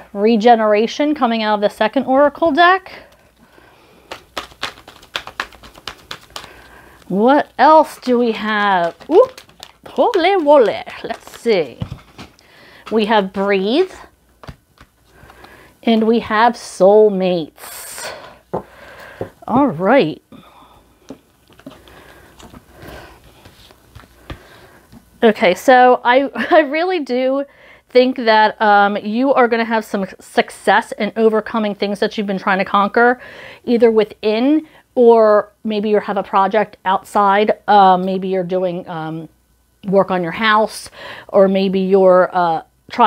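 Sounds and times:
cards being shuffled: 3.1 - 16.3, 21.1 - 25.1
cards sliding and tapping on table: 4.1 - 6.7, 14.4 - 15.6.

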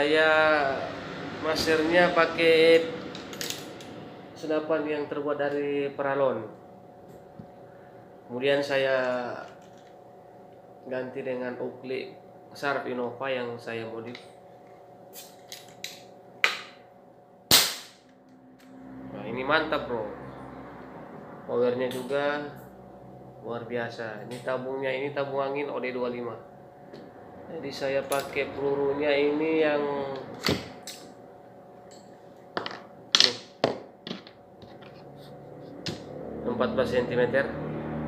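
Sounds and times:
faint steady hum: 0.0 - 37.4.

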